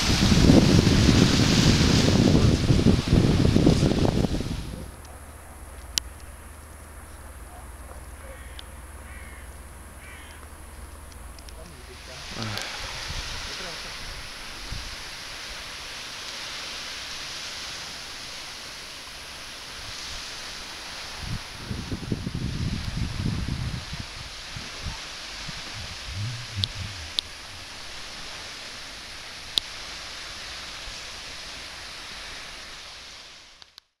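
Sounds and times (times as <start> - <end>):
sea washing on the shore: 0.0 - 33.6
low rumbling bursts: 23.5 - 28.7.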